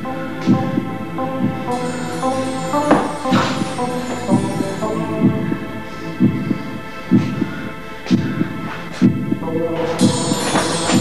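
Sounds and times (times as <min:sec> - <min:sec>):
low throbbing heartbeat pulse: 0:06.2 - 0:09.4.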